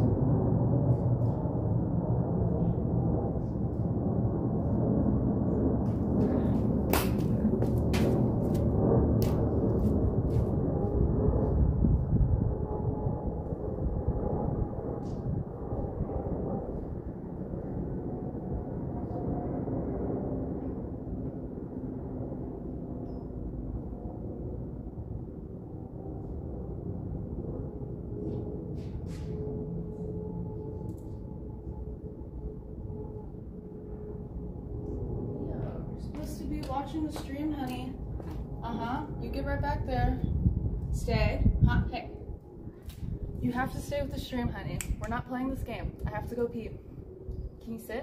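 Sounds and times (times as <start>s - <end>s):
low outdoor rumble: 0.0s - 19.4s, 23.4s - 48.0s
faint wavering hum: 0.0s - 48.0s.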